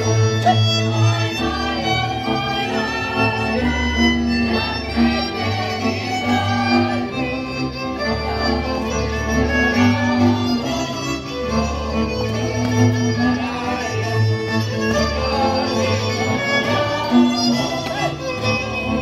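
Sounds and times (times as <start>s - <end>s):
fiddle folk dance music: 0.0s - 19.0s.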